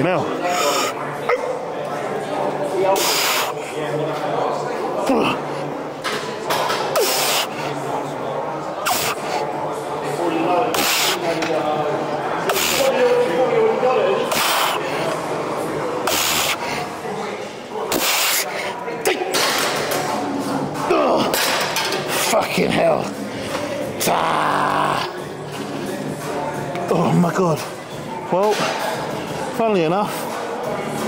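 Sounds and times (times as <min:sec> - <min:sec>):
man straining vocally: 0:24.0 - 0:25.2.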